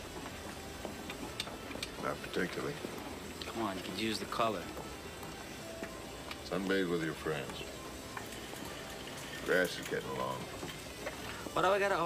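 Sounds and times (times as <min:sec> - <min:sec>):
store room tone hum: 0:00.0 - 0:12.0.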